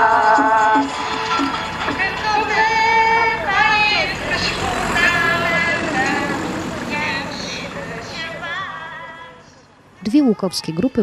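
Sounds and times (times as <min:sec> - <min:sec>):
voices singing a hymn: 0:00.0 - 0:09.7
crowd and street noise: 0:00.0 - 0:11.0.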